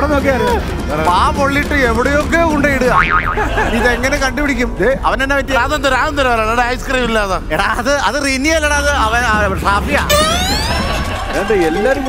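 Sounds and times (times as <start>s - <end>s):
background music: 9.8s - 12.0s
wobbling pitch rise and fall: 10.1s - 11.2s.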